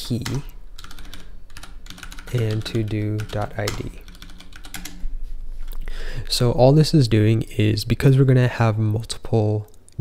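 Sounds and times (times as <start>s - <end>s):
computer keyboard typing: 0.0s - 5.0s.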